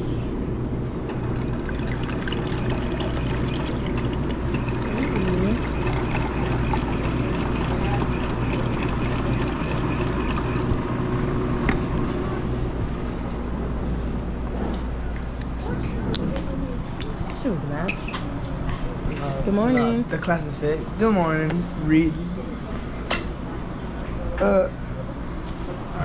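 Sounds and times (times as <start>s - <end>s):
low machine hum: 0.0s - 26.0s
juice pouring into plastic cup: 1.2s - 10.9s.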